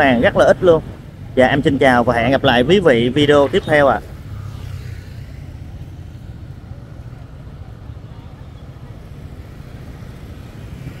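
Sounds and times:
motorbike and traffic rumble: 0.0s - 11.0s.

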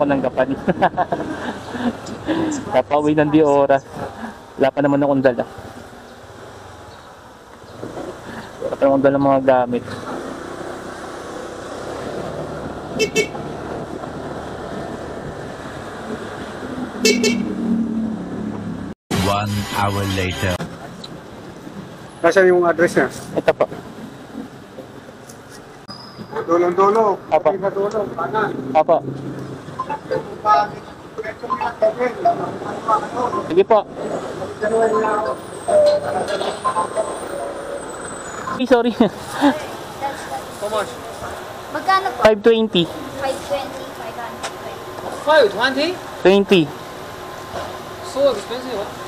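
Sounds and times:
motorcycle engine and road noise: 0.0s - 19.4s, 20.1s - 49.0s
vehicle horn double beeps: 13.0s - 13.4s, 17.0s - 17.5s
people talking: 19.1s - 20.6s, 29.9s - 33.9s, 34.6s - 37.5s, 48.0s - 48.9s.

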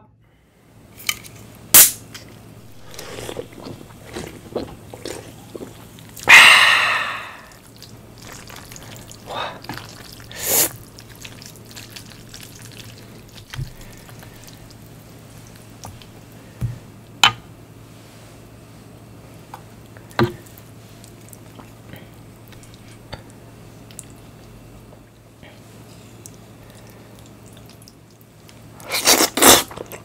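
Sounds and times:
sticky noodle sounds: 2.6s - 16.1s, 28.8s - 30.0s.

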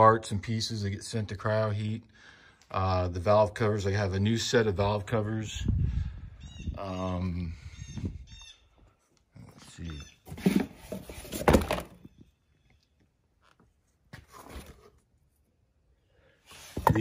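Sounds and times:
bird chirps: 6.4s - 8.7s
cardboard box rustling and knocks: 10.3s - 12.0s.

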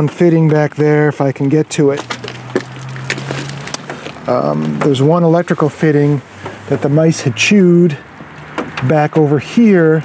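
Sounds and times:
small clicks and knocks: 8.2s - 9.3s.

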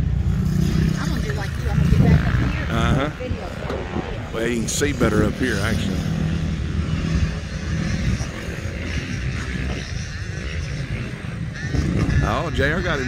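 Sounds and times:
dirt bike engine revving: 0.0s - 13.0s.

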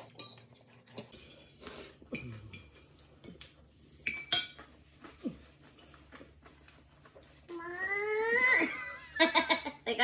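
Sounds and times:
forks clinking on plates: 0.0s - 1.5s, 4.1s - 4.7s.

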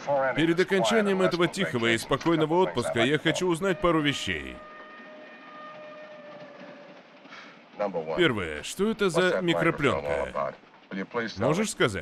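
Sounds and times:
train running noise: 0.0s - 12.0s.

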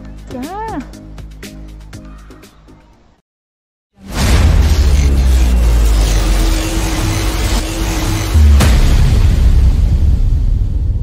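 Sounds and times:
deep cinematic rumble: 4.1s - 11.0s
steady hum: 4.2s - 9.7s.

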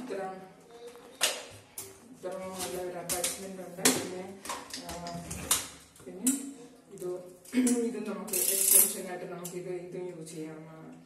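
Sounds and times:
woman talking: 0.0s - 0.6s, 2.1s - 5.4s, 6.0s - 11.0s.

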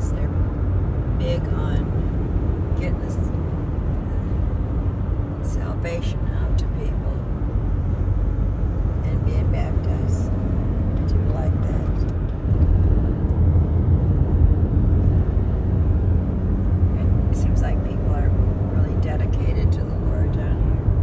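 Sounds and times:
car cabin road and engine noise: 0.0s - 21.0s.

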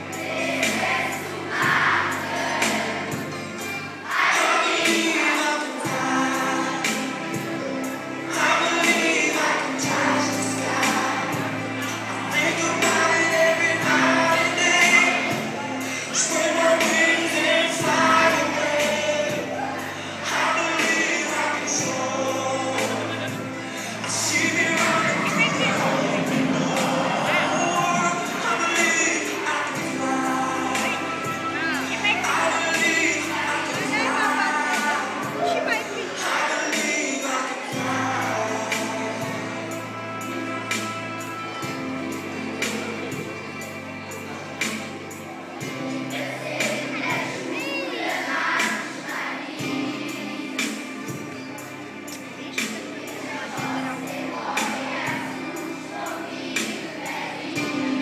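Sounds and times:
children's choir singing: 0.0s - 58.0s.

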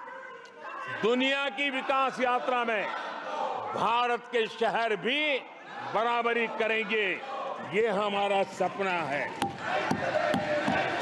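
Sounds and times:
din of many voices: 0.0s - 11.0s.

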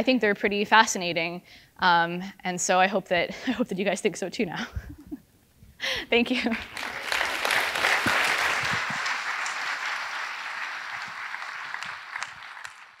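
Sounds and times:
audience applauding: 6.4s - 13.0s
scattered single claps: 6.6s - 13.0s.

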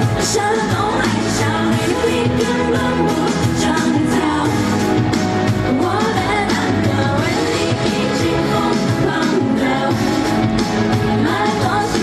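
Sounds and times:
girl singing pop ballad: 0.0s - 12.0s
pop backing music: 0.0s - 12.0s.

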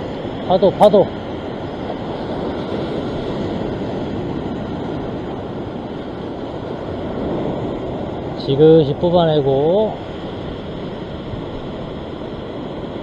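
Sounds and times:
ocean surf washing over rock: 0.0s - 13.0s.

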